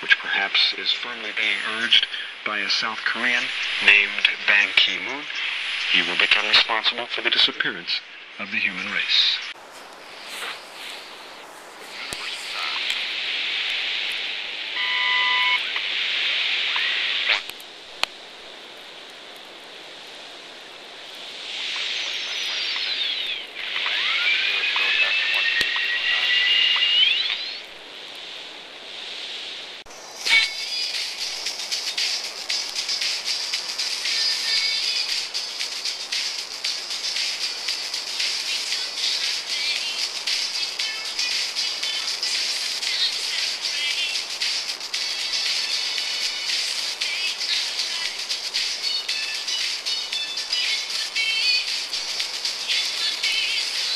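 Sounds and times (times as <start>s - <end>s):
radio static hiss: 0.0s - 53.9s
sweeping radio whistles: 1.4s - 17.5s, 20.5s - 53.9s.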